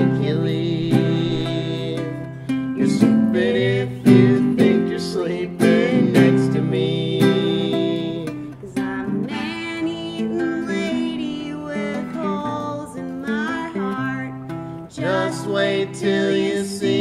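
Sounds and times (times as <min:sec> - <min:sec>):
acoustic guitar strumming: 0:00.0 - 0:17.0.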